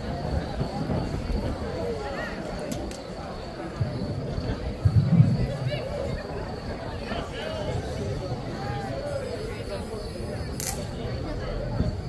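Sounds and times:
crowd murmur: 0.0 - 12.0
sharp high click: 10.6 - 10.9.

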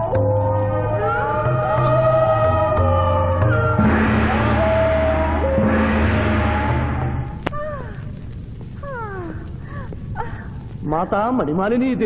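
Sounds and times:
low steady rumble: 3.6 - 11.1.

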